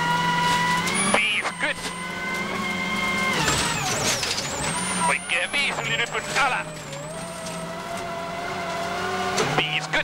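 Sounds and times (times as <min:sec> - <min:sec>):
car engine revving high: 0:00.0 - 0:10.0.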